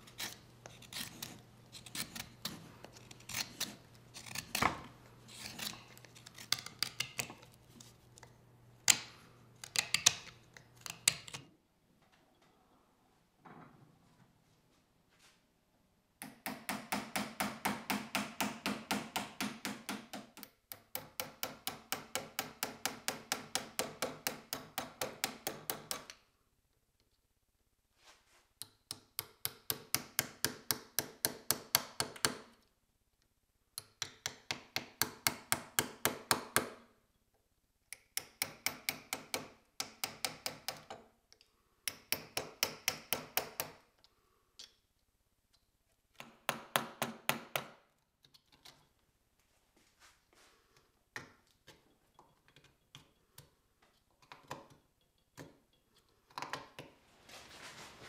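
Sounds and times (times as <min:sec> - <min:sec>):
knife carving wood: 0:00.0 - 0:11.5, 0:16.2 - 0:26.2, 0:33.8 - 0:36.8, 0:37.9 - 0:41.0, 0:41.8 - 0:43.8.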